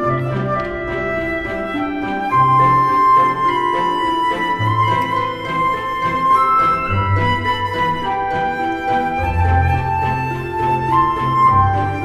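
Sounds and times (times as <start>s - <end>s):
slow melody over bass notes: 0.0s - 12.0s.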